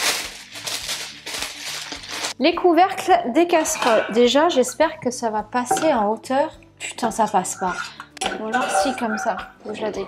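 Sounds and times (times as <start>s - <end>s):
packing wrap rustling: 0.0s - 2.4s.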